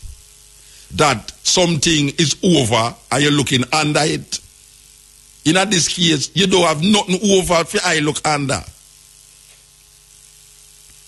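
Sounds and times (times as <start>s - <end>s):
background hiss: 0.0s - 11.0s
faint electrical hum: 0.0s - 11.0s.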